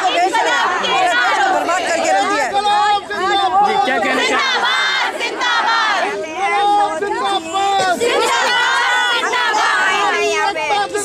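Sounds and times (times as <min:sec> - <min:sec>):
crowd of women shouting: 0:00.0 - 0:11.0.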